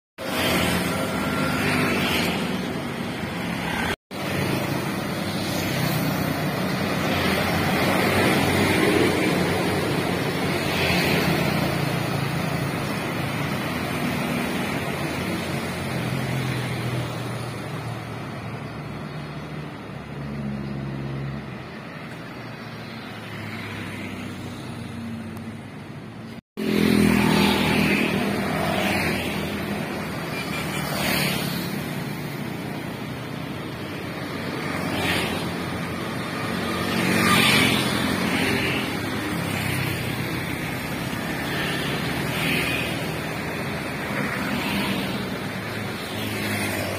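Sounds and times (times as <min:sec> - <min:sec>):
scooters and cars passing: 0:00.2 - 0:46.9.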